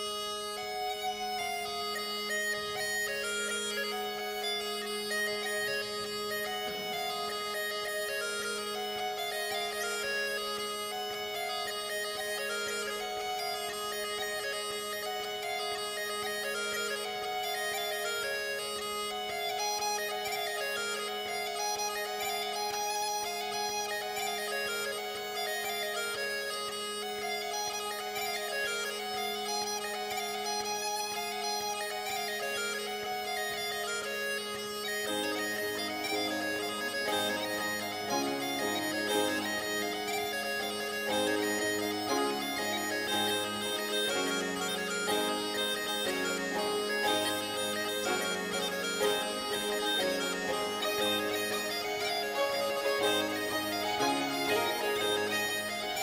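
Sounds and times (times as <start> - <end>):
bagpipe playing over drones: 0.0 - 56.0
low instrumental accompaniment: 0.0 - 56.0.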